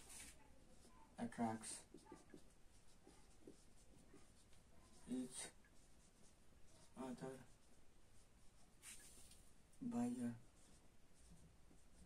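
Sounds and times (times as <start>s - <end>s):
marker writing on whiteboard: 0.0s - 9.6s, 10.4s - 12.0s.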